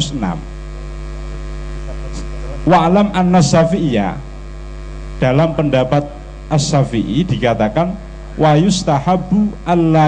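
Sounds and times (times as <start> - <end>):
electrical mains hum: 0.0 - 10.0
person speaking: 1.8 - 4.3, 5.2 - 10.0.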